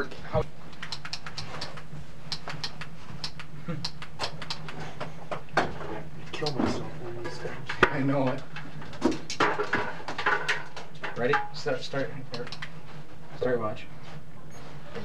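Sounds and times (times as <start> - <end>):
steady low hum: 0.0 - 15.0
sharp clicks and clatter: 0.7 - 4.8, 12.3 - 12.7.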